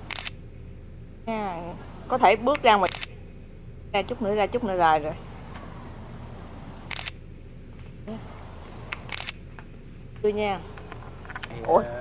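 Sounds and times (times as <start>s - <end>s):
camera shutter firing: 0.0s - 0.4s, 2.5s - 3.1s, 6.9s - 7.2s, 8.9s - 9.4s.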